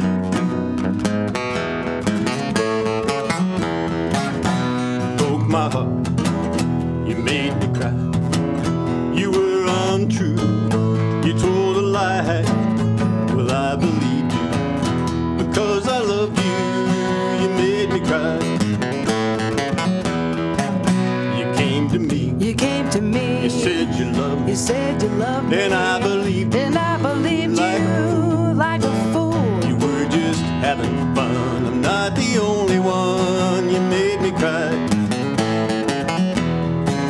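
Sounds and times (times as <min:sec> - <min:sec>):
acoustic guitars strumming: 0:00.0 - 0:37.0
person singing: 0:05.0 - 0:06.0, 0:07.0 - 0:08.1, 0:09.1 - 0:14.6, 0:15.3 - 0:18.7, 0:21.3 - 0:35.0.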